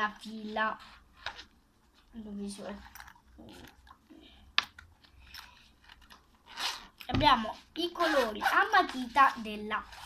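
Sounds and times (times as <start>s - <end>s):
pencil case rustling and scraping: 0.2s - 3.8s, 5.0s - 10.0s.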